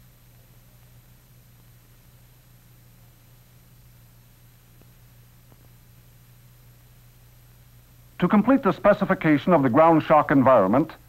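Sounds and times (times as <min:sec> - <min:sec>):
faint hiss: 0:00.0 - 0:11.0
low steady hum: 0:00.0 - 0:11.0.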